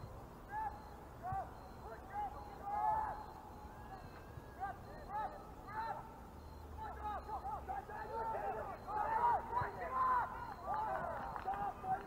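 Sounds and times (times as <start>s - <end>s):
distant players shouting: 0.4s - 12.0s.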